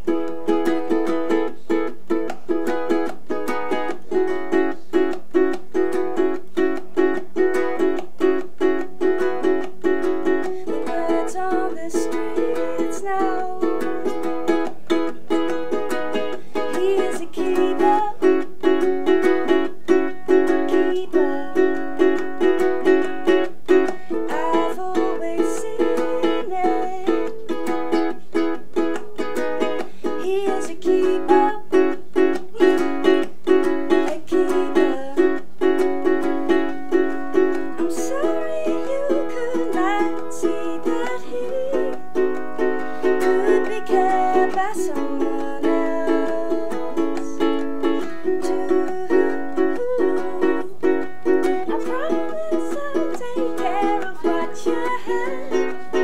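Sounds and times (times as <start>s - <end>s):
ukulele strumming: 0.0s - 56.0s
woman singing: 0.1s - 56.0s.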